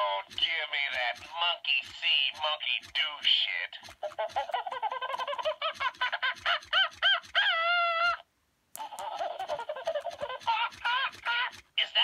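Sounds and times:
toy monkey laughing through speaker: 0.0 - 12.0.

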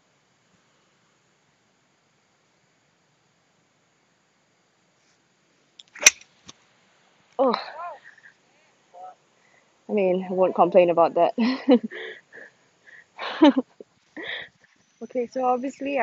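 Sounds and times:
golf club striking ball: 6.0 - 6.2.

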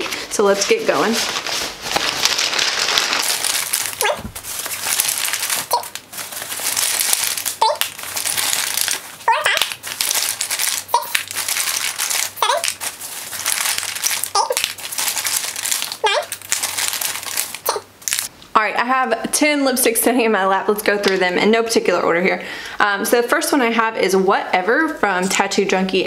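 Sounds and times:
rustling in a cloth bag: 0.1 - 17.6.

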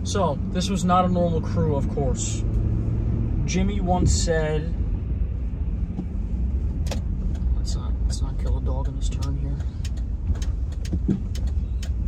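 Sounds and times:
car cabin rumble: 0.0 - 12.0
light ticks: 6.8 - 12.0.

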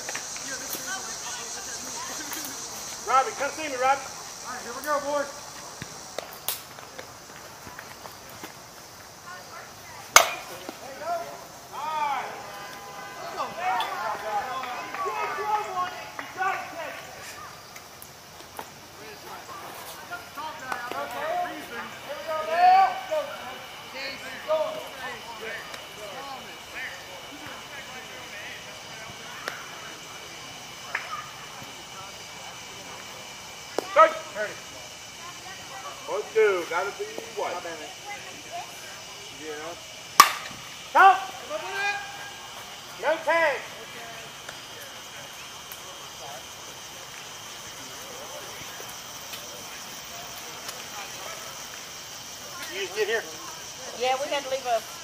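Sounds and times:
players shouting: 0.4 - 6.1, 9.3 - 17.8, 18.8 - 54.6
softball bat striking ball: 10.1 - 10.8, 40.2 - 40.6.

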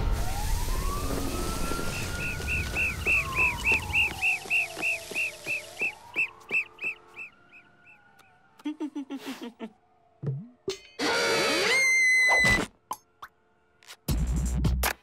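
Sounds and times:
siren wailing: 0.0 - 12.7
car alarm chirping: 1.2 - 8.6.

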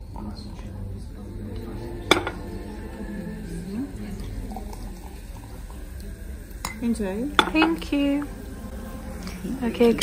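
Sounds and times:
low hum: 0.3 - 9.8
murmur of background voices: 0.3 - 10.0.

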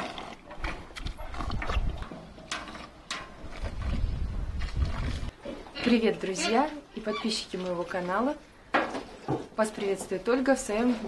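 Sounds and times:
cows drinking water: 0.0 - 11.0.

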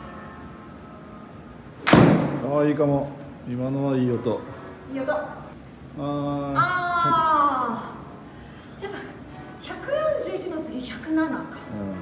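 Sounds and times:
golf club striking ball: 1.8 - 2.6.

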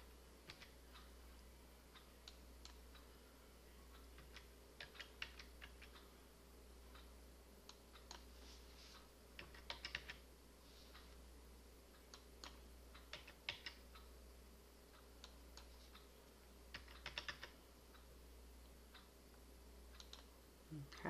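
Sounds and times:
low steady hum: 0.0 - 21.0
faint keyboard typing: 0.4 - 1.1, 3.9 - 6.1, 7.0 - 11.2, 12.0 - 14.0, 16.7 - 17.6, 19.9 - 20.3.

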